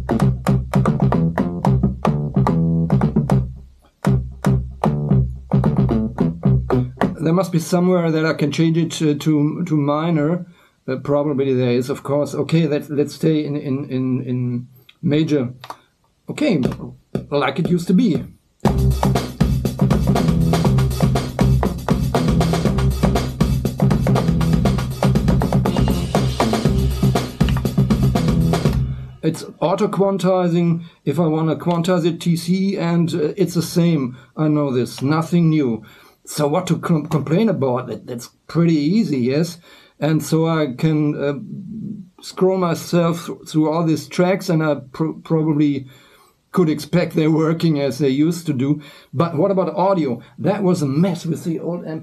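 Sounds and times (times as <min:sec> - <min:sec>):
plucky synth bass notes: 0:00.0 - 0:07.2, 0:18.2 - 0:29.8
drum beat: 0:00.0 - 0:07.3, 0:16.6 - 0:29.3
deep low synth tone: 0:20.1 - 0:29.2.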